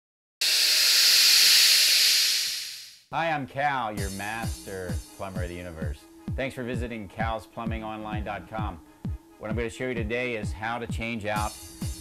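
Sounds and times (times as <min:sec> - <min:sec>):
loud hiss: 0:00.4 - 0:03.0.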